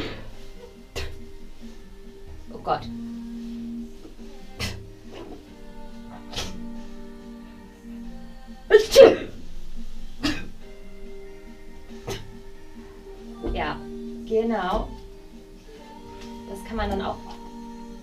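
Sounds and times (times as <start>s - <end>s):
background music with held notes: 0.0s - 18.0s
woman sneezing: 8.7s - 9.4s.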